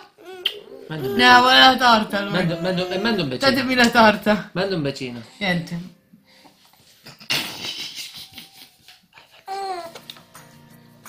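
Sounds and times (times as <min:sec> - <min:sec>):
child laughing and babbling: 0:00.0 - 0:03.4, 0:09.5 - 0:10.0.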